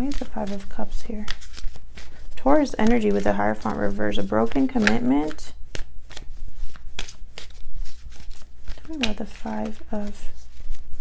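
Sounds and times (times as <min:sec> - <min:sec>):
cards shuffled papery rustle: 0:00.0 - 0:11.0
card slaps: 0:04.8 - 0:06.3, 0:08.2 - 0:09.8.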